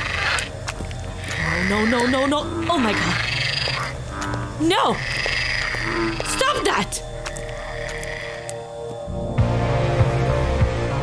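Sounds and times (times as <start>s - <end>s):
frog croaking: 0.0s - 9.2s
electronic drone: 0.0s - 11.0s.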